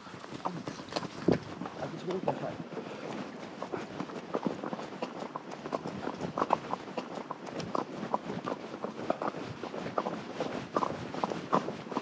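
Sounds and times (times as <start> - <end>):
horse hoofbeats on gravel: 0.0 - 12.0.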